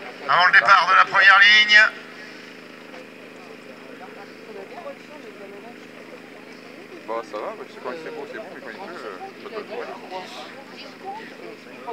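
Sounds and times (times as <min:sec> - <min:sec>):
faint voices: 0:00.0 - 0:11.9
quad engines idling: 0:00.0 - 0:11.9.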